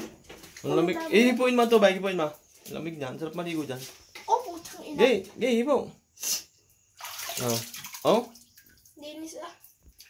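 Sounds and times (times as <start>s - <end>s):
water splash: 7.0s - 8.8s
thin stream of water pouring: 7.0s - 9.0s.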